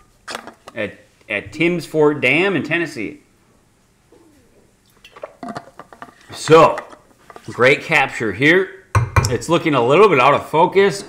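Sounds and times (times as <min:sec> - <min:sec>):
man swallowing a drink: 0:04.2 - 0:05.8
drink container clicks and knocks: 0:09.0 - 0:09.3.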